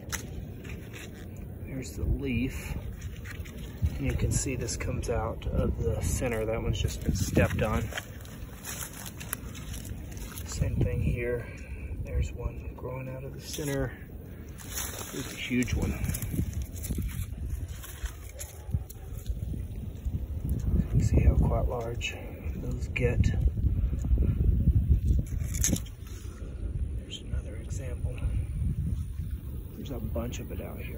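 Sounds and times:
plants rustling: 0.0s - 30.9s
wind rumble on microphone: 0.0s - 30.9s.

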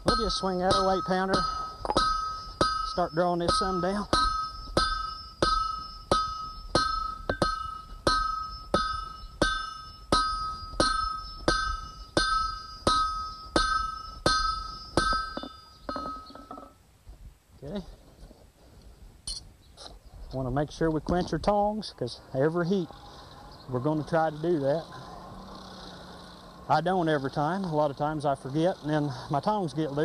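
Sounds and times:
sledgehammer striking steel on anvil: 0.0s - 16.8s.

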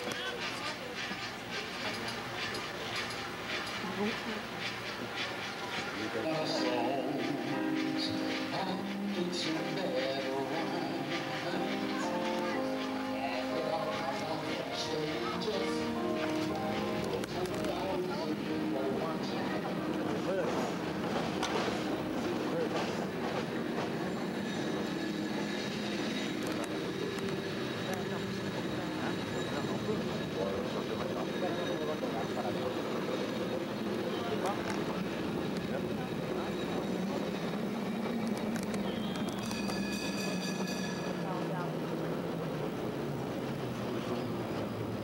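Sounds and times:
cable car rumbling on rails: 0.0s - 45.0s
cable car bell ringing: 6.0s - 20.4s, 22.3s - 43.0s.

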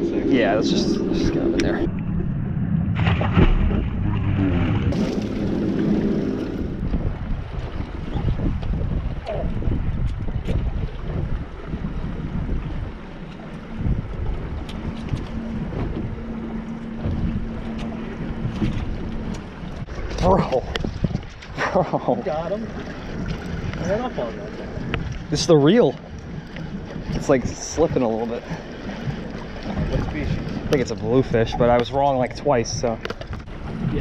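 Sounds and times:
low steady hum: 0.0s - 34.0s
wind buffeting microphone: 0.0s - 34.0s.

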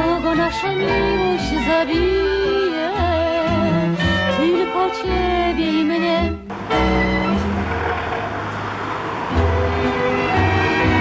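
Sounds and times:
song: 0.0s - 11.0s
cars passing by: 6.5s - 11.0s.

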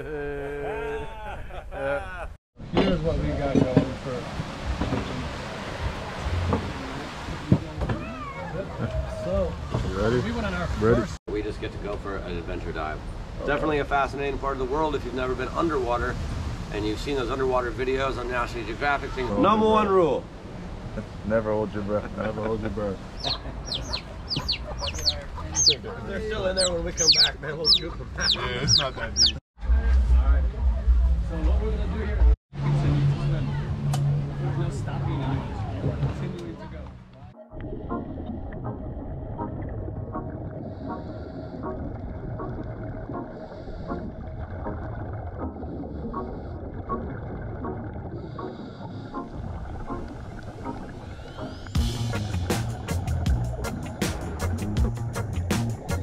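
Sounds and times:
ducklings peeping: 23.2s - 25.9s, 26.6s - 29.4s.

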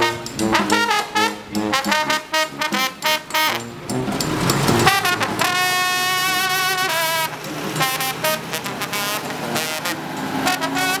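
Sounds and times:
brass band playing: 0.0s - 11.0s
bus engine: 0.0s - 11.0s
street traffic: 0.0s - 11.0s.

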